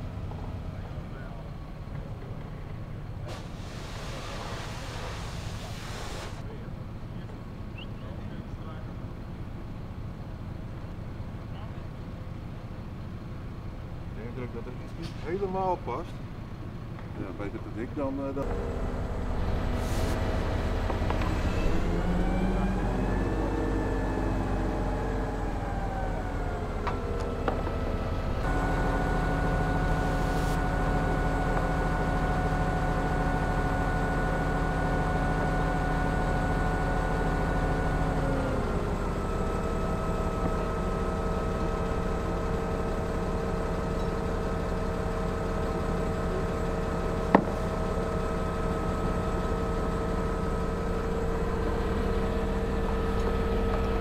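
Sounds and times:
crane diesel engine running: 0.0 - 54.0.

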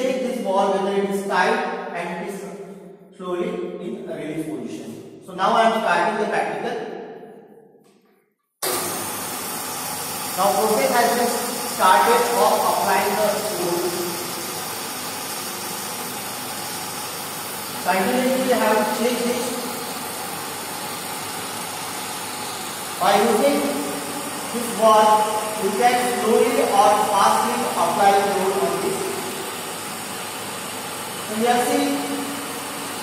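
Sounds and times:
hydraulic pump motor running: 8.6 - 33.0.

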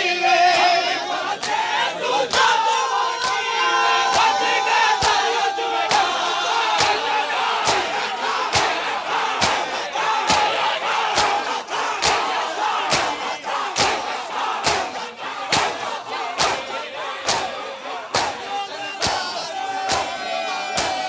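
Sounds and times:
crowd slapping chests in unison: 0.0 - 21.0
men chanting and shouting: 0.0 - 21.0.

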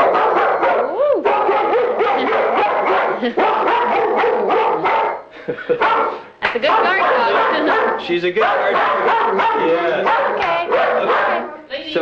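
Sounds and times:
dog barking rapidly: 0.0 - 11.5.

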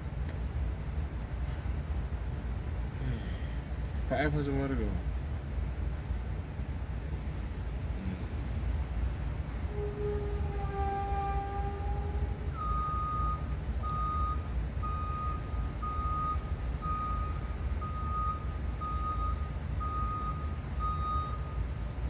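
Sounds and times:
reversing alarm beeping: 9.7 - 21.8.

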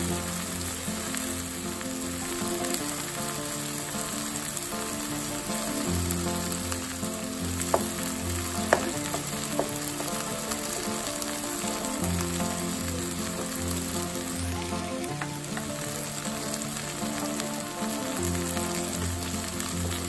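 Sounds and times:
food sizzling in hot oil: 0.0 - 20.0.

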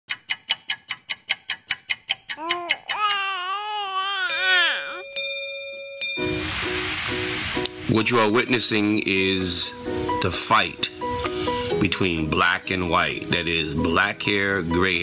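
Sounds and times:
fast run of clicks: 0.1 - 3.0
bell-like ringing tone: 4.3 - 6.7
hissing wash: 6.2 - 10.1.

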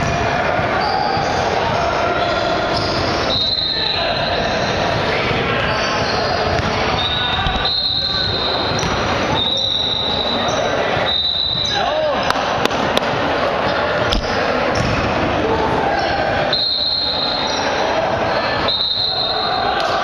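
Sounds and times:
players' voices: 0.0 - 20.0.

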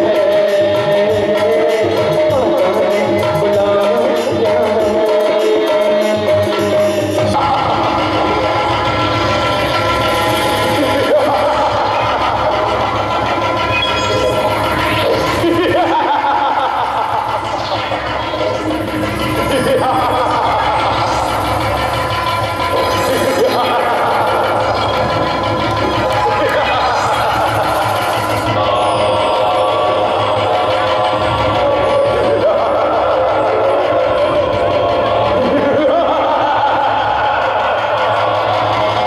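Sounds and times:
person singing: 0.0 - 8.7, 22.7 - 25.0, 26.2 - 39.0
harmonium chords: 0.0 - 39.0
pulsing low drumbeat: 6.4 - 39.0.

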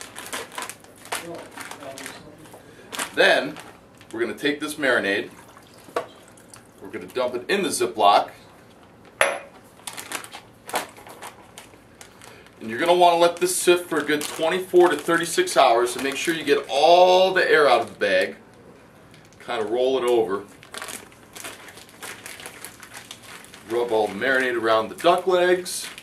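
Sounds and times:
plastic bag crinkling and clicking: 0.0 - 4.3, 8.7 - 26.0.

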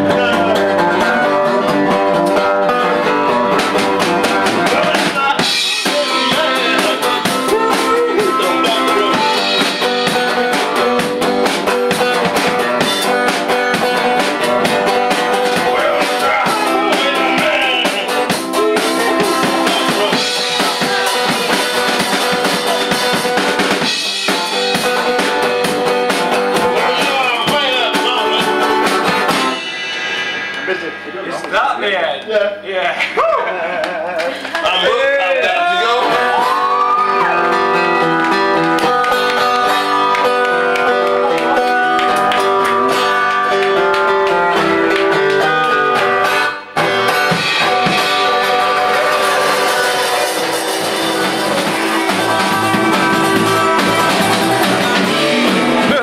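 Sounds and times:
drum kit beat: 0.0 - 32.6, 36.2 - 56.0
guitar: 0.0 - 56.0.

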